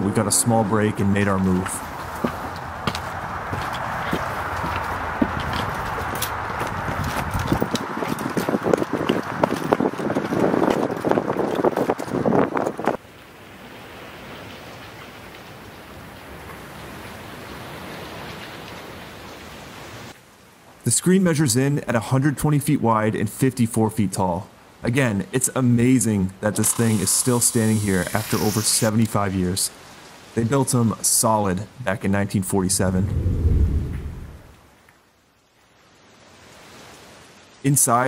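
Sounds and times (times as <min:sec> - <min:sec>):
steady outdoor hiss: 0:00.0 - 0:06.4, 0:13.0 - 0:33.2, 0:34.1 - 0:38.0
footsteps and scuffing taps: 0:01.6 - 0:10.8.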